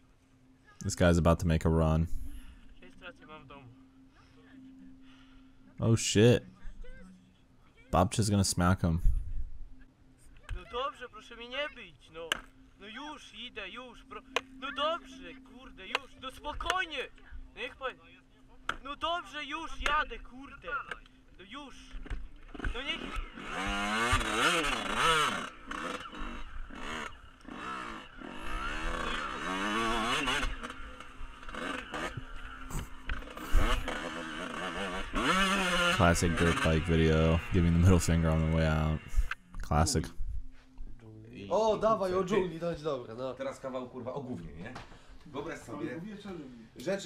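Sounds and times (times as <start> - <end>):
dirt bike engine revving: 22.3 - 39.5.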